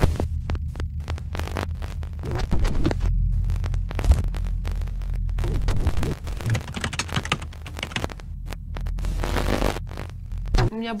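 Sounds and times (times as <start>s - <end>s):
deep throbbing electronic hum: 0.0s - 10.7s
glitchy clicks and crackles: 0.0s - 10.7s.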